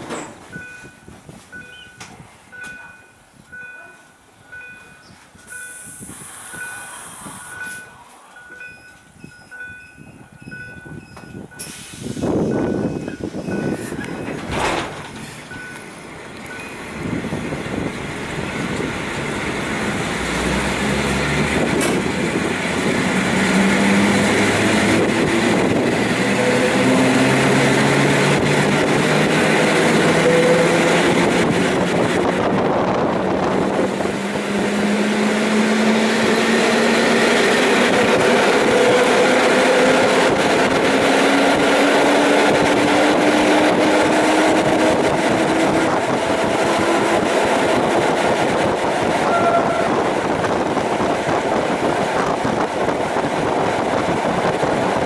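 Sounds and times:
train rail and running noise: 0.0 - 55.0.

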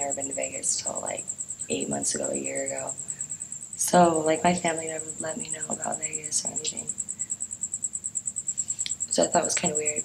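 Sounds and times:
insect chirping trill: 0.0 - 10.0.

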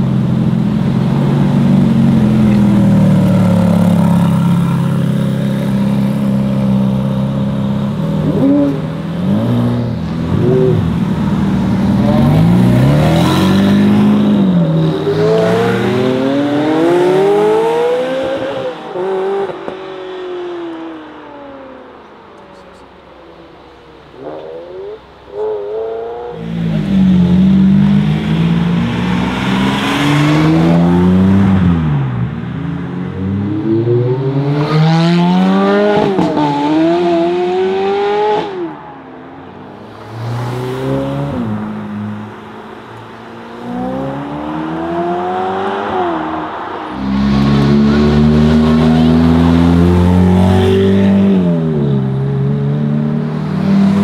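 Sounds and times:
sports cars accelerating hard: 0.6 - 21.2, 24.1 - 39.0, 39.7 - 54.0.

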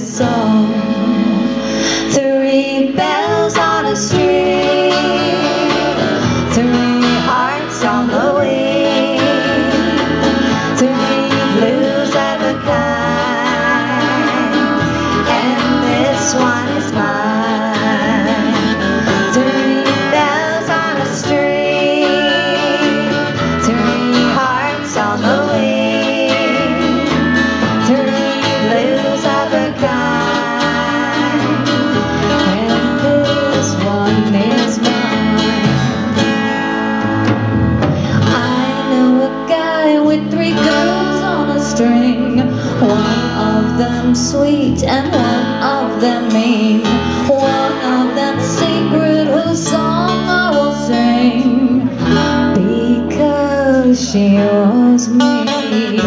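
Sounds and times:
woman singing: 0.0 - 36.8, 37.8 - 56.0
acoustic guitar: 0.0 - 56.0
bass: 0.0 - 56.0
drums: 0.0 - 56.0.

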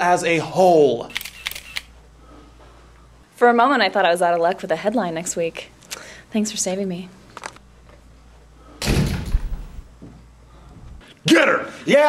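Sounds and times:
door banging: 8.8 - 9.9.

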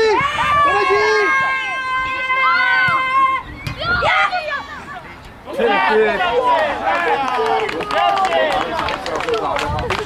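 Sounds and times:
players shouting: 0.0 - 9.6.

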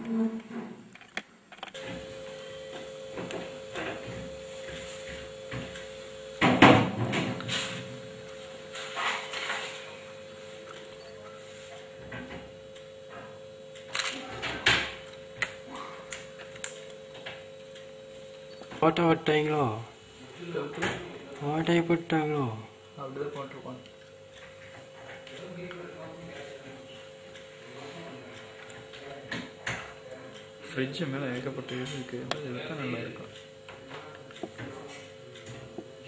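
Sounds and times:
steady hum: 0.0 - 36.0.

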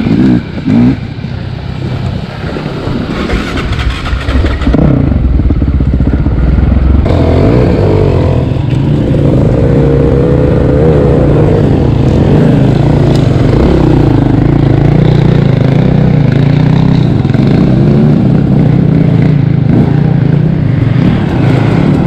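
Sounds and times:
dirt bike engines revving: 0.0 - 22.0.

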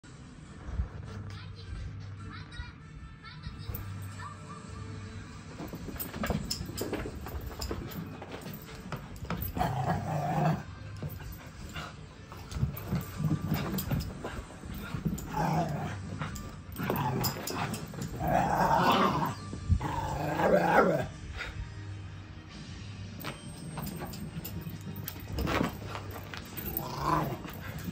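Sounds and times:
small dog growling and barking: 9.3 - 21.5, 24.0 - 27.9.

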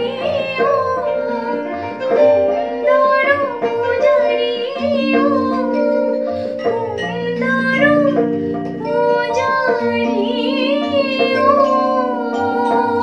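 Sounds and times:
electronic keyboard chords: 0.0 - 13.0
woman singing with vibrato: 0.0 - 13.0.

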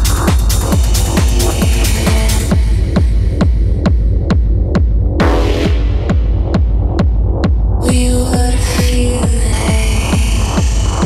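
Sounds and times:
deep bass: 0.0 - 11.0
techno kick drum: 0.0 - 11.0.

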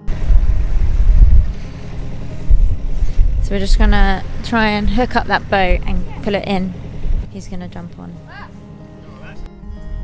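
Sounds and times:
wind buffeting microphone: 0.0 - 7.8.

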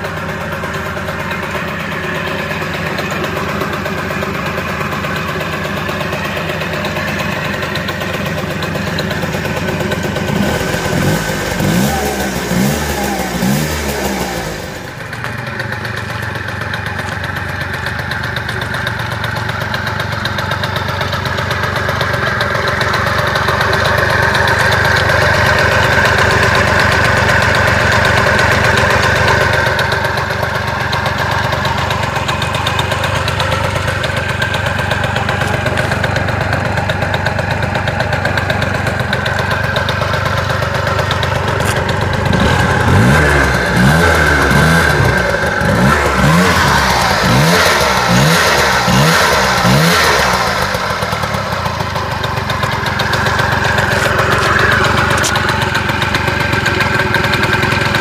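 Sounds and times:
scooter engine revving: 0.0 - 58.0.

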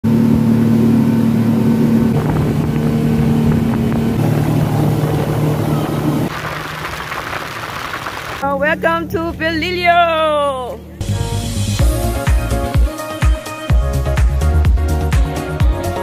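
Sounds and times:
outboard motor drone: 0.0 - 9.8
boat wake rushing: 0.1 - 11.0
wind and water hiss: 2.1 - 8.4.

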